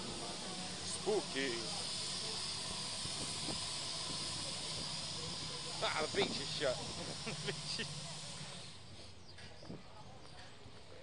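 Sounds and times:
steady hiss of outdoor noise: 0.0 - 11.0.

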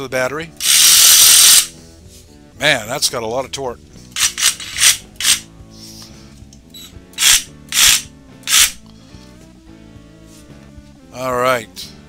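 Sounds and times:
background music: 0.0 - 12.0
reciprocating saw bursts: 0.6 - 1.7, 7.2 - 8.8.

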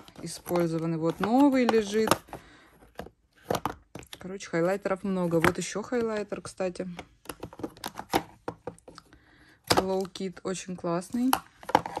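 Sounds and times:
plastic compacts clicking and tapping: 0.0 - 4.4, 5.3 - 12.0.

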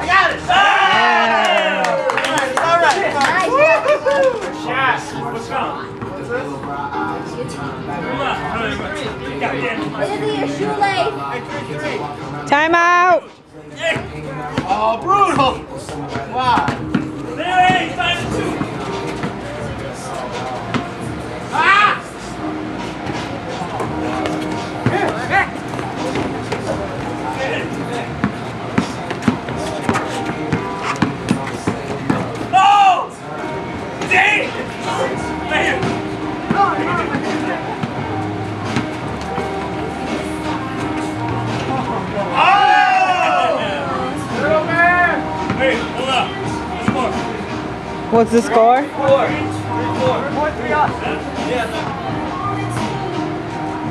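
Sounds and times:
chatter of voices: 0.0 - 53.9
men calling out and talking: 0.0 - 53.9.

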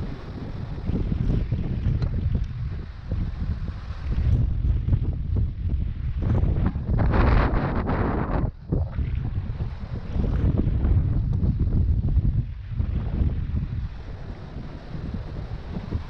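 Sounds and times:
rush of noise: 0.0 - 16.0
wind buffeting microphone: 0.0 - 16.0.

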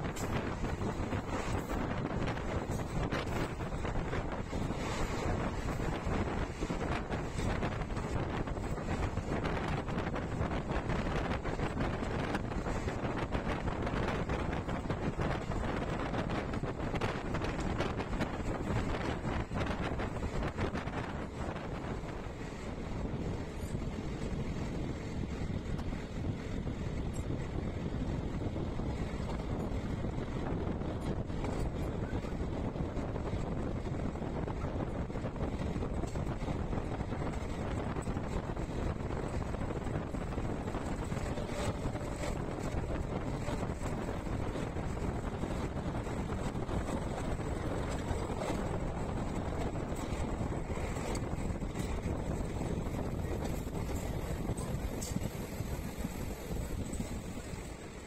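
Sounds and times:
train running on track: 0.0 - 58.0
wind buffeting microphone: 0.0 - 58.0.

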